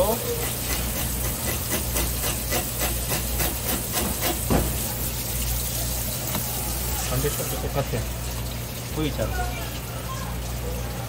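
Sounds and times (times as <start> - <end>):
water spraying onto plastic: 0.0 - 9.8.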